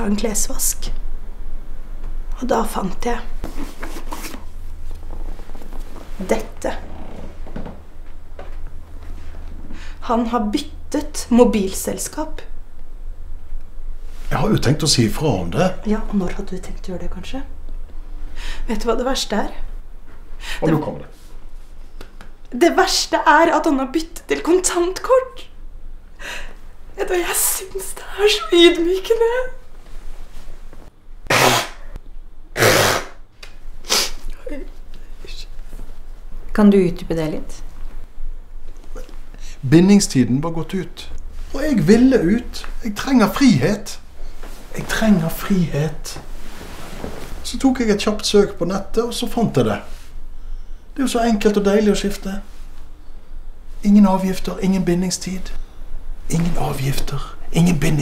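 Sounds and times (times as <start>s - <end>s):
low steady hum: 0.0s - 58.0s
woman blowing her nose: 31.3s - 32.0s, 32.6s - 33.2s, 33.9s - 34.2s
sharp sniff: 32.6s - 33.2s, 33.8s - 34.3s.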